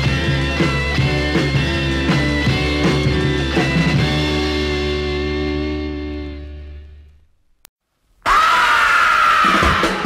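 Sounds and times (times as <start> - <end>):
drums: 0.0 - 6.5, 8.2 - 10.0
rock recording with held high note: 0.0 - 7.2, 8.2 - 10.0.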